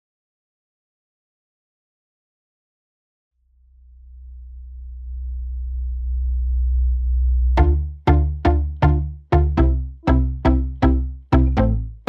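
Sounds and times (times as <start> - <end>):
low synthesizer drone: 3.5 - 12.0.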